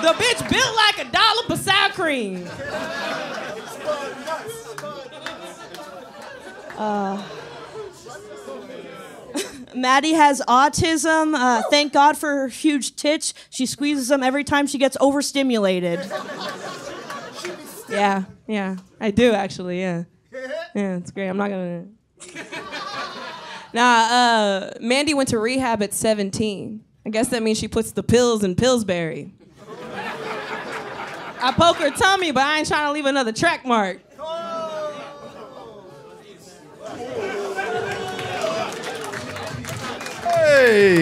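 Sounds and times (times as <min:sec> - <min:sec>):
audience chatter: 0:00.0 - 0:09.6, 0:34.1 - 0:41.0
audience laughter: 0:00.0 - 0:09.7, 0:16.0 - 0:18.0, 0:22.2 - 0:23.7, 0:29.5 - 0:32.6, 0:34.6 - 0:41.0
loud excited shouting: 0:34.1 - 0:41.0.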